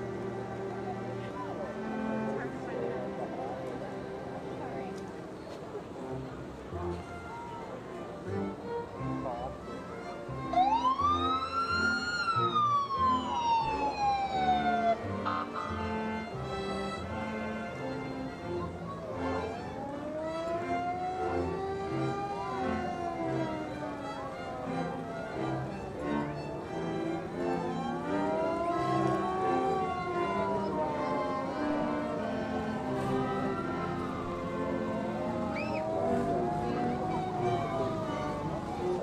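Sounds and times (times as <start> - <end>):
crowd noise: 0.0 - 39.0
music: 0.0 - 39.0
siren wailing: 10.5 - 15.8, 19.8 - 25.6, 27.8 - 39.0.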